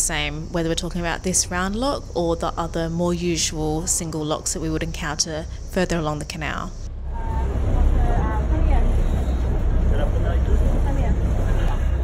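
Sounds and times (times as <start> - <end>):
boat engine idling: 0.0 - 12.0.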